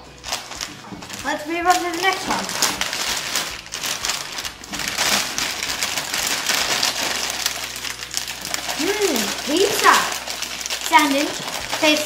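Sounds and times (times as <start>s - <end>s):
plastic snack packets crinkling: 0.0s - 12.0s.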